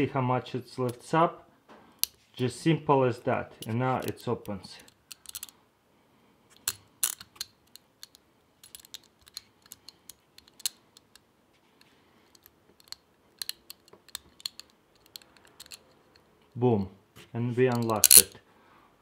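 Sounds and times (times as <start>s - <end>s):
metal clicks and scrapes in lock: 3.6s - 5.6s, 6.5s - 16.4s, 17.7s - 18.4s.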